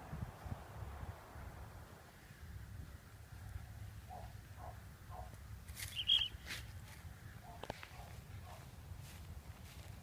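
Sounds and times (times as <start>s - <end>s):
wind rumble on microphone: 0.0s - 5.6s.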